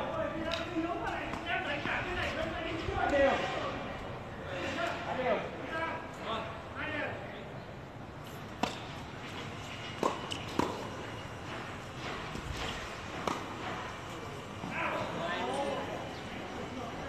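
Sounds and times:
tennis ball bouncing on court: 8.6 - 9.0, 9.9 - 11.1, 12.6 - 13.6
tennis ball hit by rackets: 8.6 - 11.0, 12.6 - 13.8.

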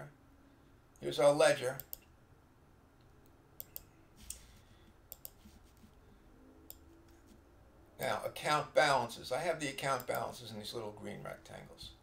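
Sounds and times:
computer mouse clicks: 1.8 - 2.1, 3.2 - 4.5, 5.1 - 6.0.

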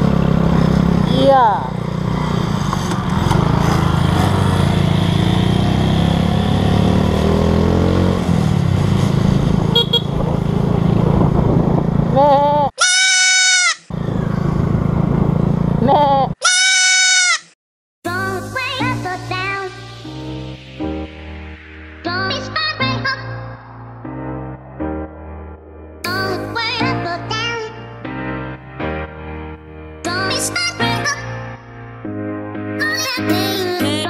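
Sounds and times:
motorcycle engine: 0.0 - 12.6, 13.9 - 16.4
wind noise on helmet: 9.2 - 12.2
loud bleat: 12.8 - 13.8, 16.4 - 17.5.

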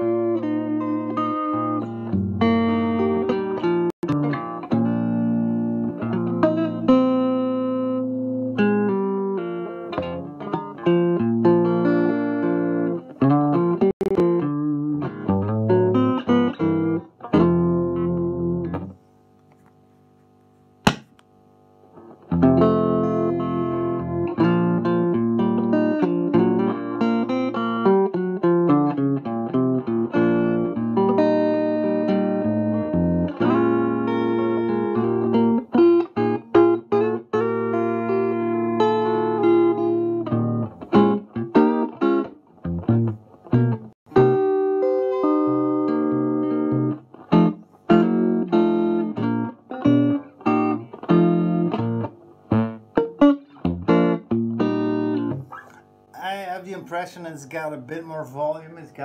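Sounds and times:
electric guitar through tube amp: 0.0 - 18.9, 22.0 - 55.8
sharp click: 20.8 - 21.3.

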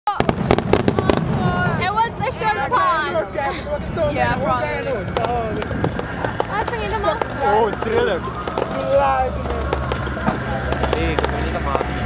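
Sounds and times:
fireworks crackling: 0.1 - 12.0.

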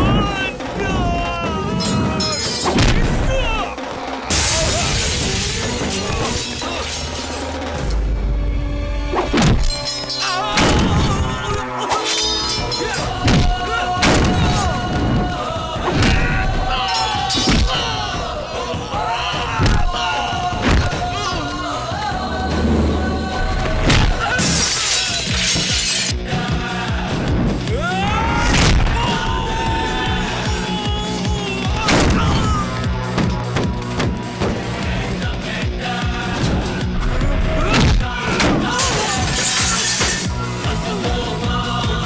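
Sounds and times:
action film music: 0.0 - 42.0
window glass shattering: 4.3 - 7.6, 9.4 - 11.2, 24.4 - 26.1, 38.4 - 40.4.

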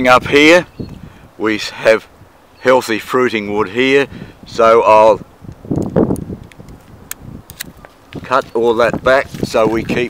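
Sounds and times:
branches rustling: 5.2 - 10.0
pruning shears clicking: 5.8 - 7.8.

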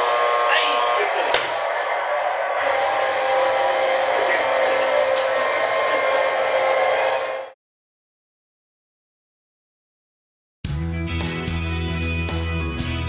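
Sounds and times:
blower fan humming: 0.0 - 7.5.

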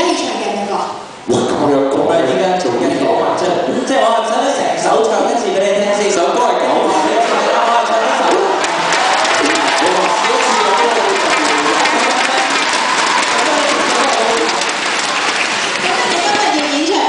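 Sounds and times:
voices over microphones: 0.0 - 14.8, 15.5 - 17.0
audience applauding: 6.9 - 17.0.

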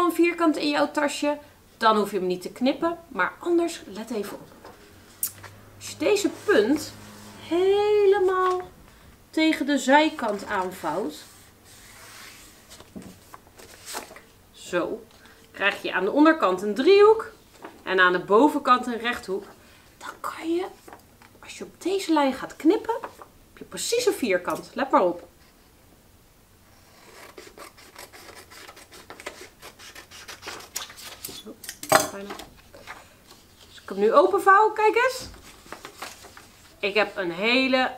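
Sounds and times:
paper rustling: 8.2 - 8.8, 10.0 - 14.3, 22.9 - 23.3, 27.0 - 31.5, 35.1 - 37.4
scissors cutting paper: 27.0 - 31.8.

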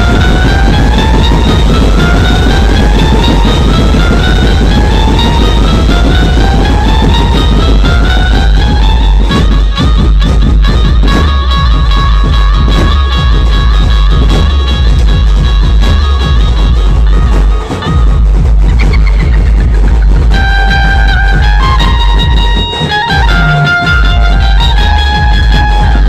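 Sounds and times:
band music from speakers: 0.0 - 26.0.

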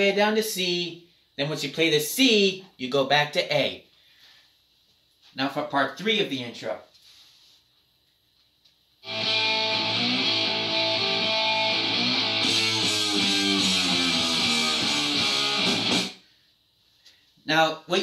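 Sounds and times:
electric guitar strumming: 9.0 - 16.2.

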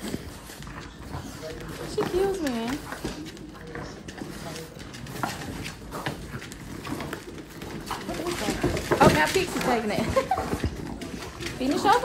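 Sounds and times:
claws clicking on wood floor: 0.0 - 12.0
dogs tearing cardboard box: 0.0 - 12.0.

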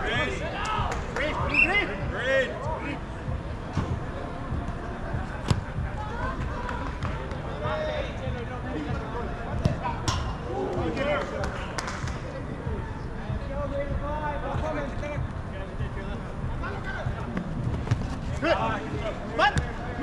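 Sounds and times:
ball being kicked: 17.4 - 18.2.

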